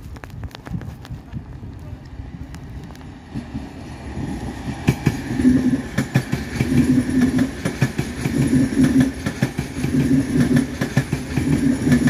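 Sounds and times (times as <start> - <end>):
low train rumble: 0.0 - 12.0
train wheels clicking over rails: 0.0 - 12.0.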